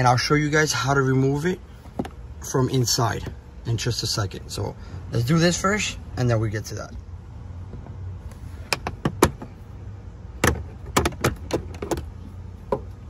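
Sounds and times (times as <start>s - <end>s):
low steady hum: 0.0s - 13.0s
plastic trim clicking and knocking: 10.4s - 12.1s.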